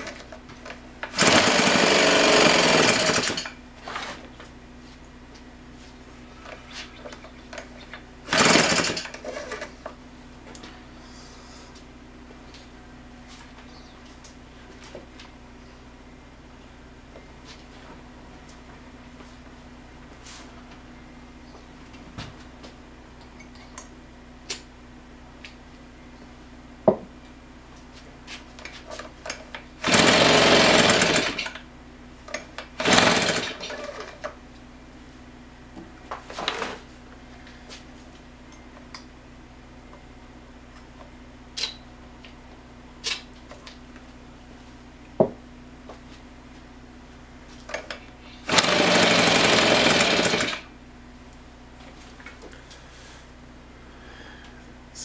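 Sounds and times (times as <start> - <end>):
leaf blower engine firing: 1.0 - 3.6, 8.2 - 9.7, 29.8 - 31.6, 32.8 - 34.2, 48.4 - 50.7.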